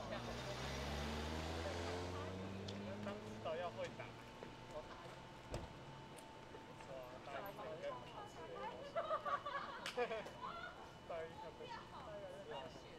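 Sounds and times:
vehicle engine speeding up: 0.0 - 3.9.

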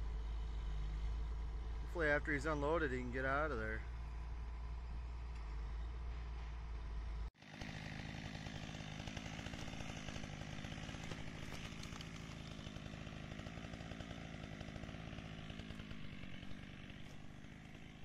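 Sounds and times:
engine running steadily: 0.0 - 18.0.

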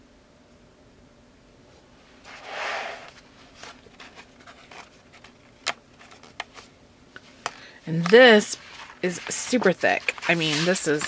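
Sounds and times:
page turning swish: 2.3 - 3.8, 8.6 - 11.0
paper rustling and tapping: 7.4 - 11.0.

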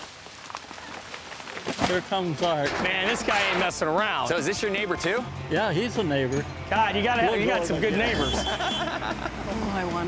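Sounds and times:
branches crackling and snapping: 0.0 - 3.8.

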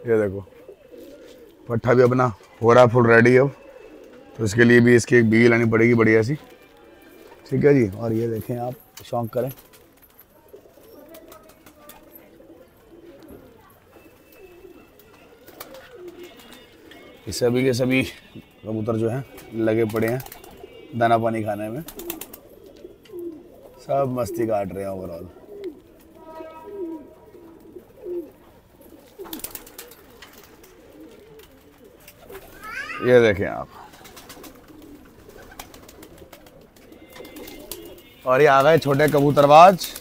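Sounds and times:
pigeons cooing: 0.0 - 40.0.

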